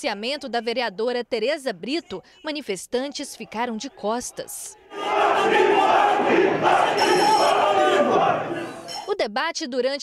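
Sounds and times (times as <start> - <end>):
crowd shouting: 3.8 - 8.9
shrill steady tone: 6.7 - 9.1.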